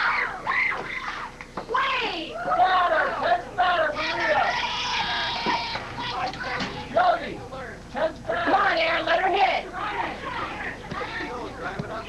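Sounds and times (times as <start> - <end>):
children shouting calls: 0.0 - 3.2, 3.9 - 6.8.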